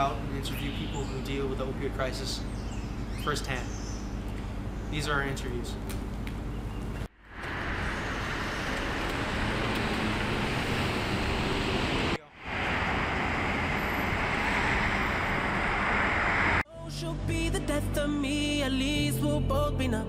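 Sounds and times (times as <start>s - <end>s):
street traffic noise: 0.0s - 16.6s.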